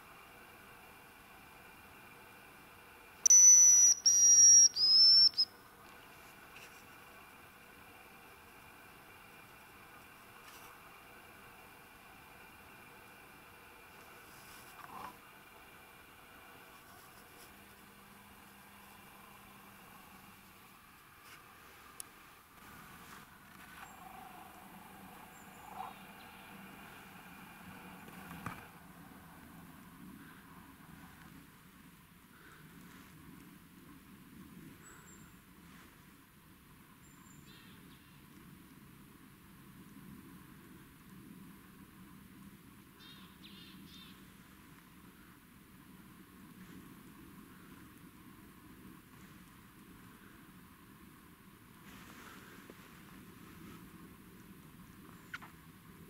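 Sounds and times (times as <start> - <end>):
faint steady hiss: 0.0 - 56.0
grouse whistling call: 3.3 - 5.5.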